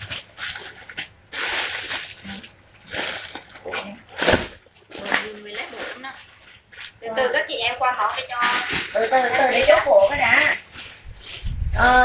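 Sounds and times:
plastic bags rustling: 0:00.0 - 0:11.6.

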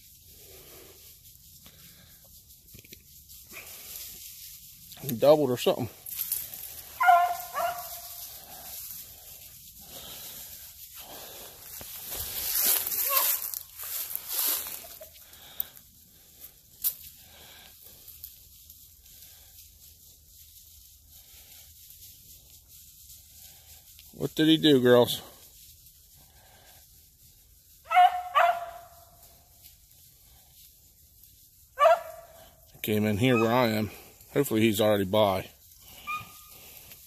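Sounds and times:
dry leaves and brush rustling: 0:00.0 - 0:37.0
hound baying: 0:06.8 - 0:08.7, 0:27.8 - 0:29.0, 0:31.8 - 0:32.5, 0:33.2 - 0:33.7, 0:35.9 - 0:36.6.

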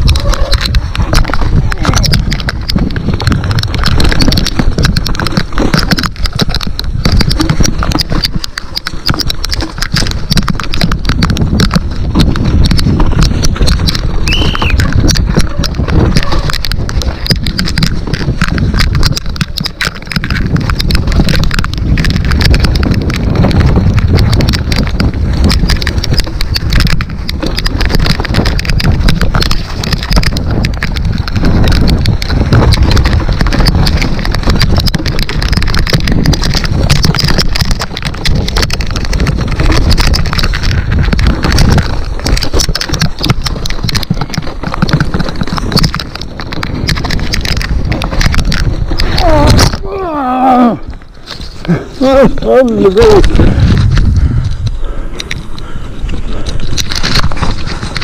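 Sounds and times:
mountain bike rattling over rocks: 0:00.0 - 0:58.0
wind buffeting microphone: 0:00.0 - 0:58.0.

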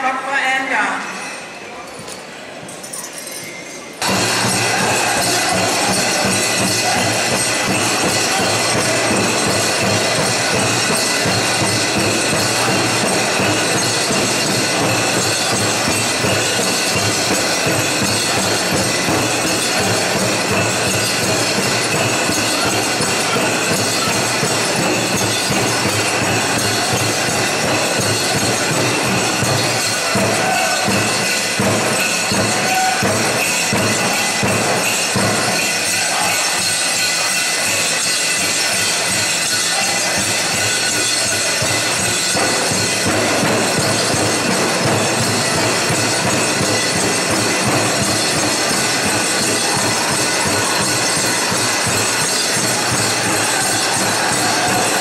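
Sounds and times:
metal jingle cones clinking: 0:00.8 - 0:55.0
drum group drumming and singing: 0:04.0 - 0:55.0.

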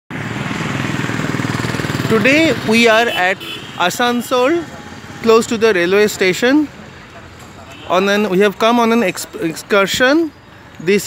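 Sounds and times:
street traffic noise: 0:00.1 - 0:11.0.

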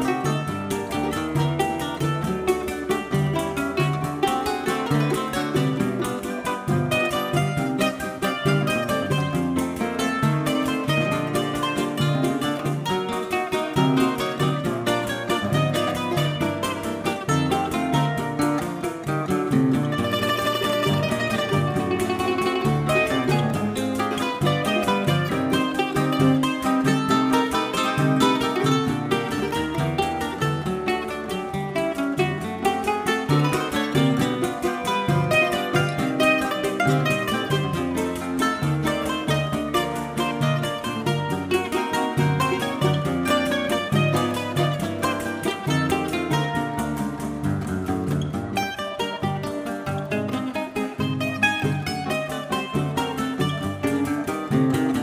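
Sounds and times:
acoustic guitars: 0:00.0 - 0:55.0
mandolin plucking melody: 0:00.0 - 0:55.0.

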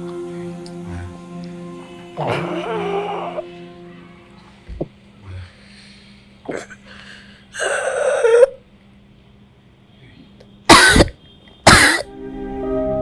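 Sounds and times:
soft plucked-string music: 0:00.0 - 0:04.5
woman coughing: 0:10.7 - 0:12.1.

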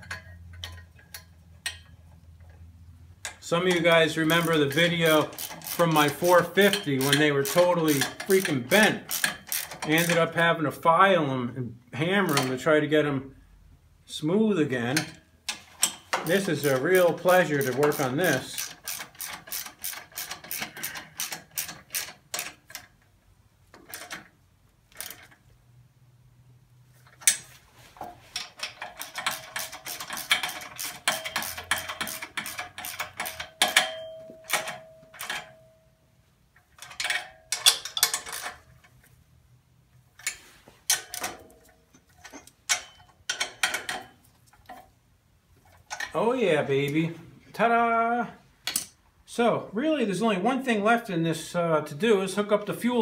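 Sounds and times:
ratchet wrench clicking: 0:03.2 - 0:10.2, 0:15.5 - 0:23.0, 0:24.9 - 0:25.4, 0:28.4 - 0:35.4, 0:36.8 - 0:38.8
faint metallic ring: 0:33.6 - 0:36.2.

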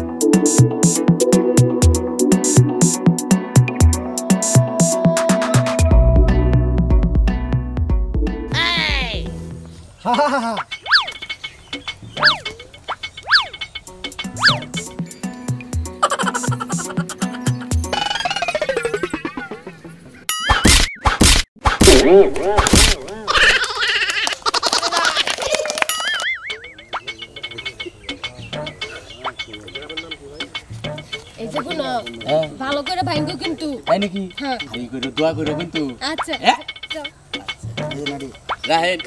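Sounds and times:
background music: 0:00.0 - 0:09.8, 0:13.3 - 0:20.3, 0:26.3 - 0:39.0
people talking and calling out: 0:08.5 - 0:09.4, 0:21.9 - 0:39.0
wobbling cartoon tone: 0:12.2 - 0:13.6, 0:14.2 - 0:14.8, 0:16.0 - 0:20.8
comic background music: 0:13.3 - 0:20.8
loud stick whacks: 0:20.5 - 0:23.1.

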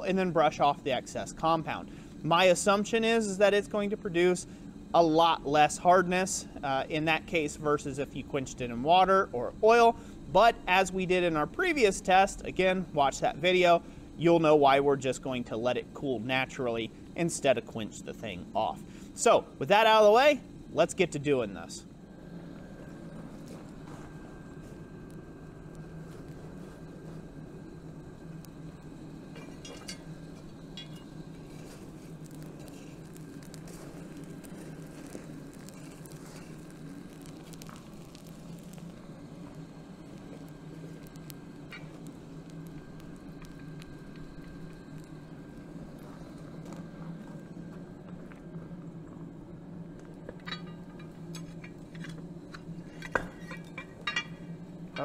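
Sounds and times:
metal clinks: 0:30.7 - 0:31.1, 0:50.4 - 0:51.8, 0:53.0 - 0:54.4.

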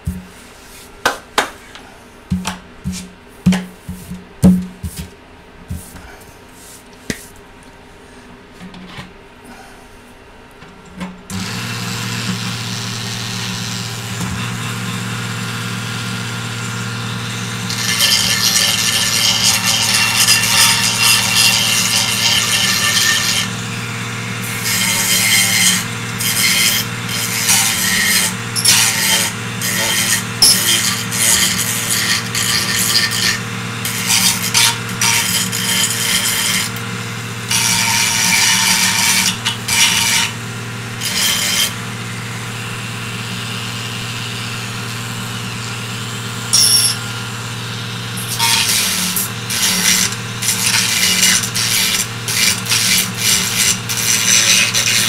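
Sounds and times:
rotary tool humming: 0:11.3 - 0:55.0
rotary tool cutting plastic: 0:17.3 - 0:36.8, 0:37.4 - 0:40.4, 0:48.2 - 0:55.0.

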